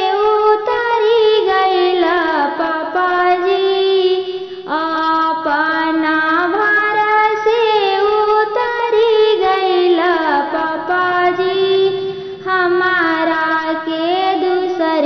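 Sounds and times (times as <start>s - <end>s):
woman singing: 0.0s - 15.0s.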